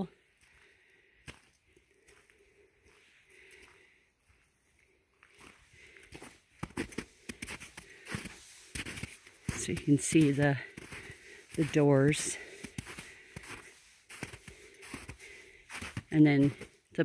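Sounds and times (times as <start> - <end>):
footsteps crunching on snow: 0.0 - 17.0.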